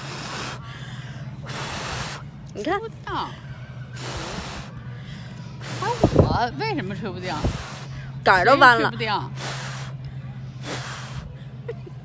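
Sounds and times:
person blowing hard puffs of breath: 0.0 - 2.4, 3.8 - 6.4, 7.3 - 8.2, 9.3 - 11.6.

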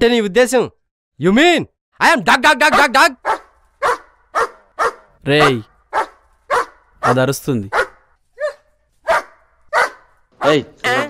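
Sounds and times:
dog barking: 2.7 - 10.6.

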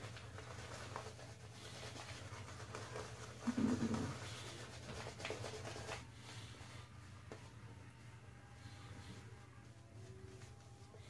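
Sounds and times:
shaving brush swishing on skin: 0.0 - 11.0.

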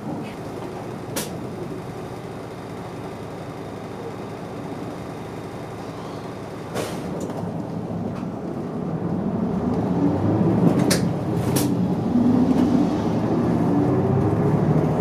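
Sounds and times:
bus engine idling: 0.0 - 9.6
bus engine accelerating: 5.7 - 15.0
air brake hiss: 6.8 - 7.1.

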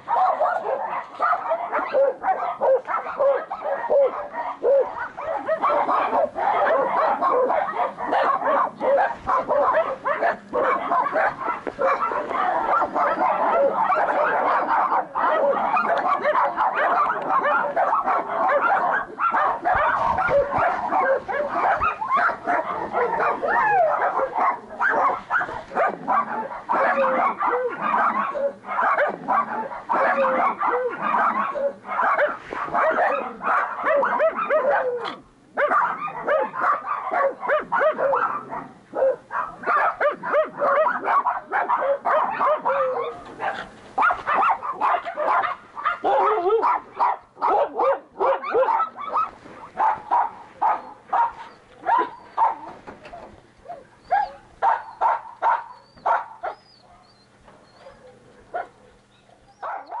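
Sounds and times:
many dogs barking: 0.0 - 60.0.

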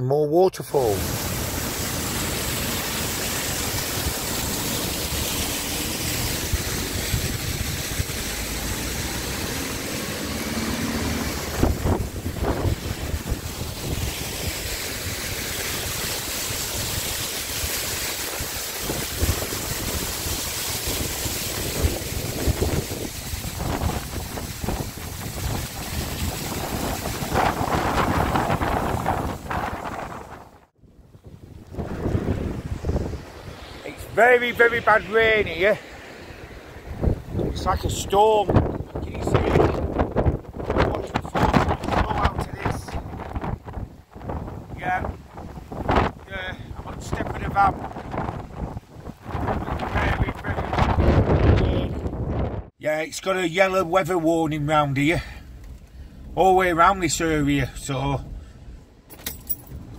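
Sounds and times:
waterfall rushing over rock: 0.8 - 30.4
wind buffeting microphone: 6.1 - 9.6, 11.0 - 35.5, 36.1 - 52.7.

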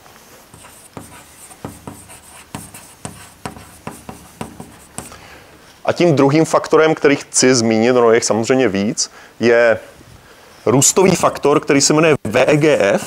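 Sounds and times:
chalk scratching on blackboard: 0.5 - 5.3.

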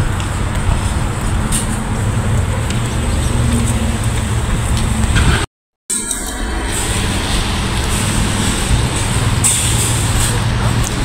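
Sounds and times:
continuous rushing hiss: 0.0 - 11.0
low rumble: 0.0 - 11.0.

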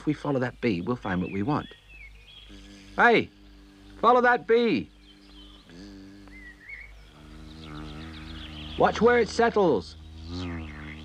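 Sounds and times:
buzzing bee sound effect: 2.4 - 11.0
high whistling chirp: 4.7 - 11.0.

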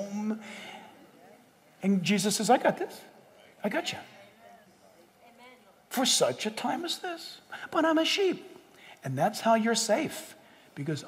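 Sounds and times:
faint soft voices: 3.2 - 5.9.

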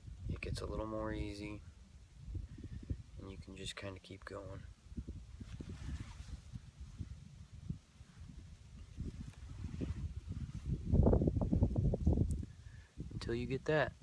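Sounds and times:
low crackling rumble: 0.0 - 14.0.

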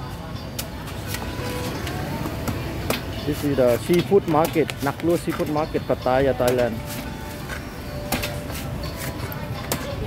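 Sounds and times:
background music: 0.0 - 10.0
street noise: 0.0 - 10.0
cleaver chopping coconut husk: 2.2 - 5.8, 6.4 - 10.0.

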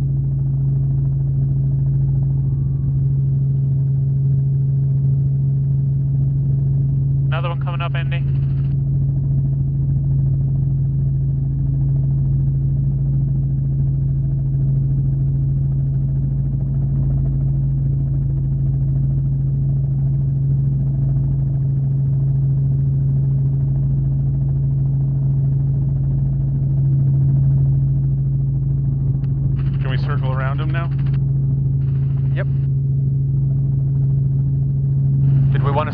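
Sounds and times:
helicopter cabin drone: 0.0 - 35.9.

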